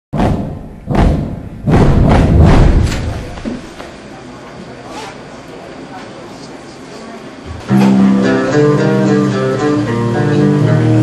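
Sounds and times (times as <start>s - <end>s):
deep heavy impacts: 0.1s - 4.0s.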